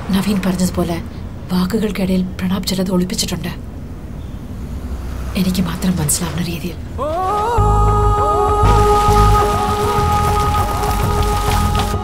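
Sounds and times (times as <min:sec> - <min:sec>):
hissing rain-like noise: 0:03.7 - 0:12.0.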